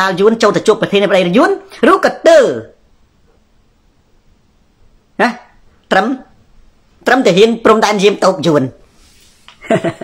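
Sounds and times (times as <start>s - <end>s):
man speaking: 0.0s - 2.8s, 5.2s - 6.4s, 7.0s - 8.8s.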